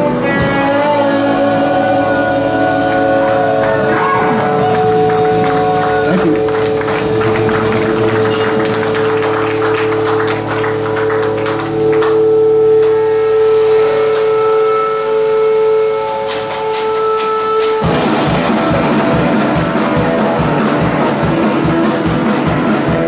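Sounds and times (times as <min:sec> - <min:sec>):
ringing electric guitar tone: 0:00.0 - 0:23.0
rock band playing: 0:00.0 - 0:23.0
drum and cymbal hits: 0:15.9 - 0:23.0.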